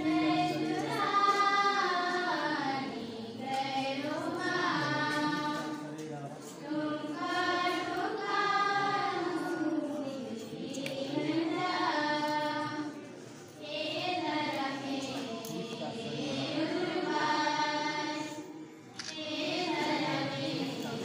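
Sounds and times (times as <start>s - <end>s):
group singing a hymn: 0.0s - 21.0s.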